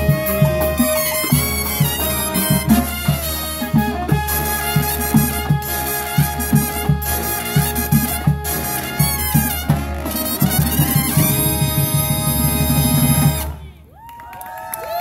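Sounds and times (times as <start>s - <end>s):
drum hits: 0.0s - 13.5s
brass band playing upbeat tune: 0.0s - 13.7s.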